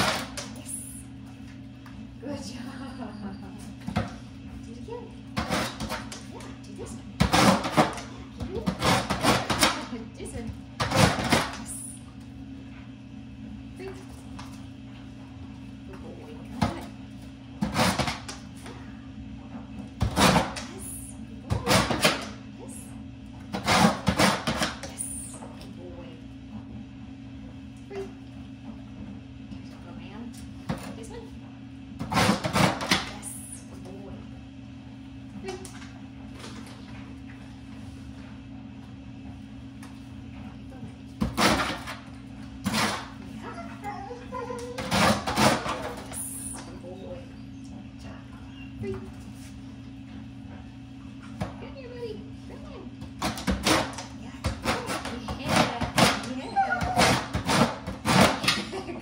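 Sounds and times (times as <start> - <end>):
steady low hum: 0.0 - 59.0.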